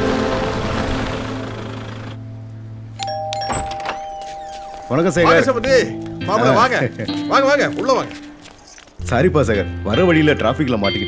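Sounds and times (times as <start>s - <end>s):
film score music: 0.0s - 11.0s
two-note doorbell chime: 3.0s - 6.3s.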